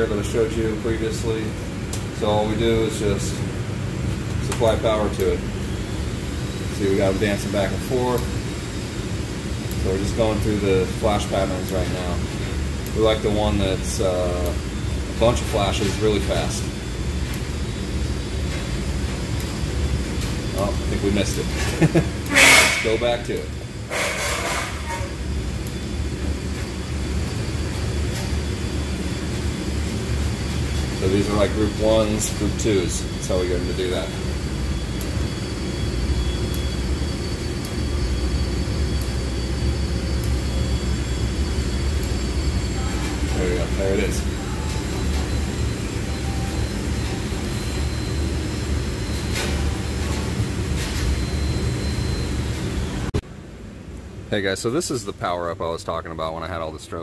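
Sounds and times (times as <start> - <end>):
low mechanical rumble: 0.0 - 57.0.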